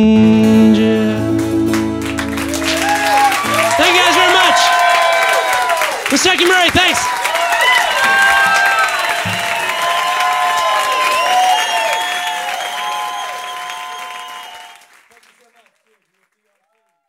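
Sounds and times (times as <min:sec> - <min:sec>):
audience applauding: 0:01.4 - 0:17.0
crowd cheering and whooping: 0:01.7 - 0:14.9.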